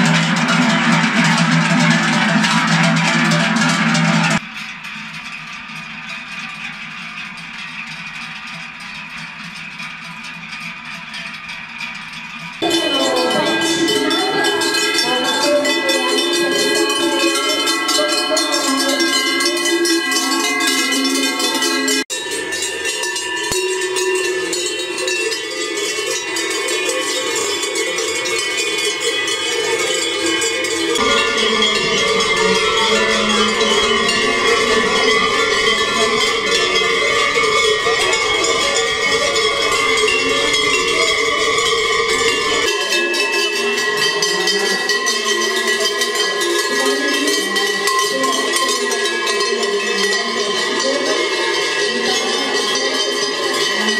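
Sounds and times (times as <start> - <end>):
cowbells clanging: 0.0 - 53.9.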